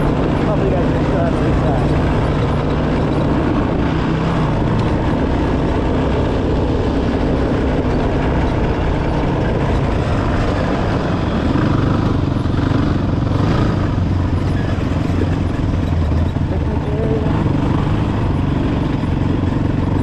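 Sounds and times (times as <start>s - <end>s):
motorcycle engine running: 0.0s - 20.0s
trail noise: 0.0s - 20.0s
wind: 0.0s - 20.0s.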